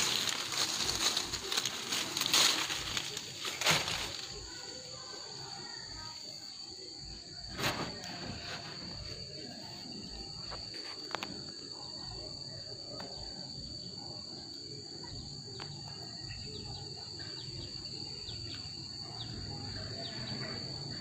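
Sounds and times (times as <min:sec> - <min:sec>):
insects buzzing: 0:00.0 - 0:21.0.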